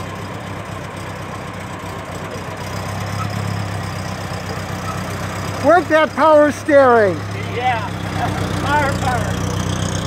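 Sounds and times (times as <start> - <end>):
old car engine droning: 0.0 - 10.0.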